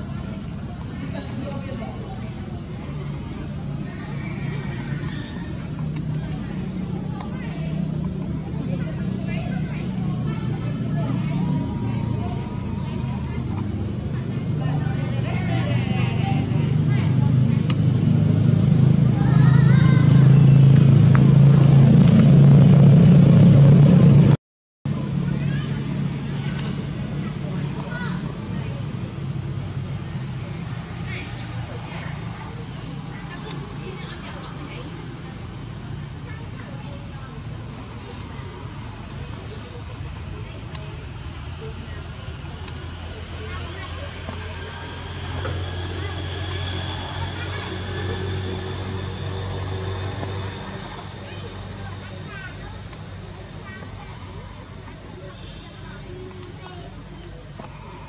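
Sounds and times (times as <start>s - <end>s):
indistinct voices: 0.0s - 58.0s
vehicle engine hum: 0.0s - 58.0s.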